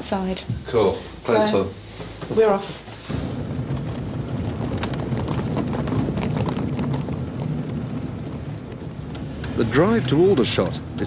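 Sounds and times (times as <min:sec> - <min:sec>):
engine and road noise rumble: 0:01.8 - 0:11.0
faint clicks: 0:09.1 - 0:11.0.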